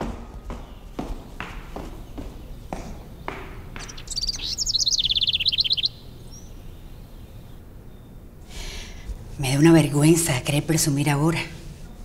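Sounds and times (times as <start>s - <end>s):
songbird twittering: 1.9s - 8.3s.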